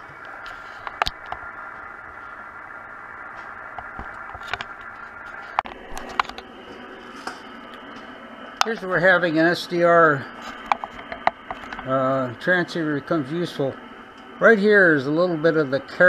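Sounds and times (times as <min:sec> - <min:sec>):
radio receiver hiss: 0:00.0 - 0:16.0.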